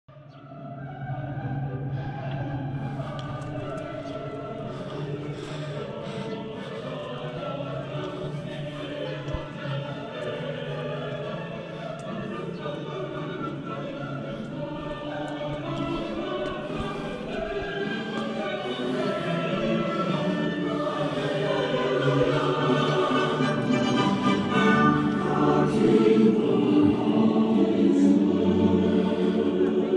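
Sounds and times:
choir singing: 0.1 - 29.9.

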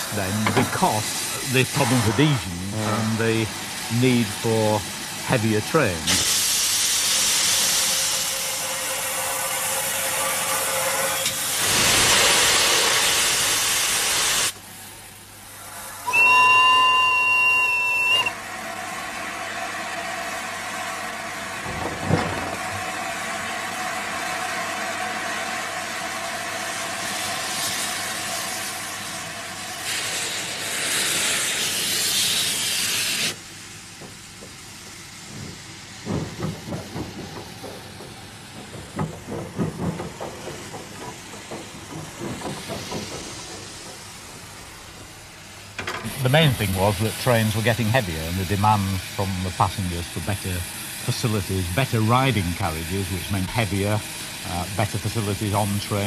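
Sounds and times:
steam hissing from locomotive: 0.0 - 56.0
steam whistle blast: 16.0 - 18.4.

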